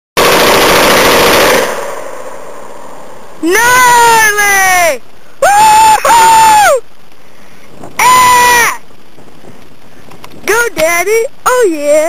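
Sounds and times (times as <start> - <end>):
machine gun automatic burst: 0.2 - 2.1
gunfire echo: 0.2 - 2.8.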